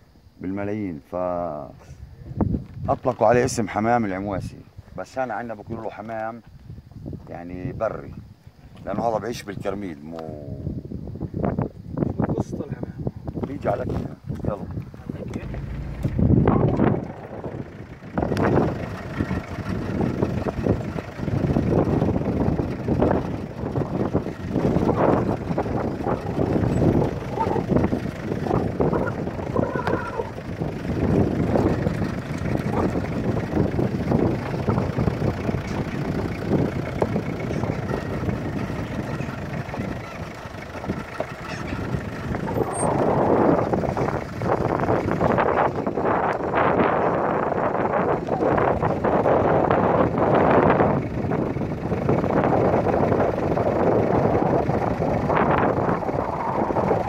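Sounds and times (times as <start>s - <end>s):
wind buffeting microphone: 1.6s - 57.0s
car driving over dirt track: 13.4s - 57.0s.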